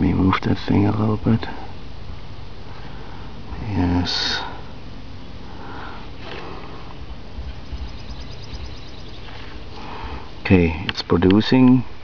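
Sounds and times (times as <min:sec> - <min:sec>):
steady low background noise: 0:00.0 - 0:12.0
person breathing or sniffing: 0:05.5 - 0:06.9, 0:09.3 - 0:10.3.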